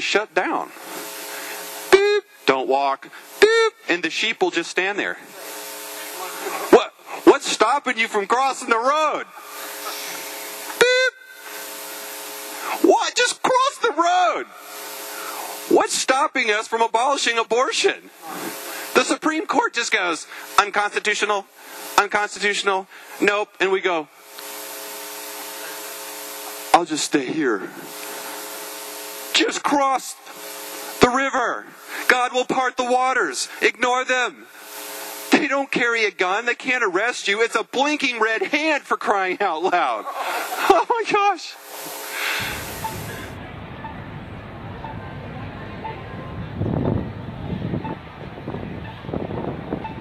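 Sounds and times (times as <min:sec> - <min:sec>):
background hiss: 0:00.0 - 0:37.1, 0:38.4 - 0:43.4
faint hum: 0:00.0 - 0:50.0
street noise: 0:41.7 - 0:50.0
crossing signal beeps: 0:42.4 - 0:44.0
wind buffeting microphone: 0:42.5 - 0:50.0.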